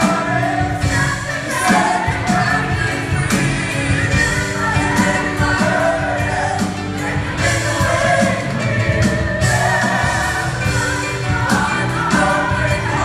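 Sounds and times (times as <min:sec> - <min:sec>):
gospel choir singing: 0:00.0 - 0:13.0
instrumental backing: 0:00.0 - 0:13.0
woman singing lead vocal: 0:00.0 - 0:13.0.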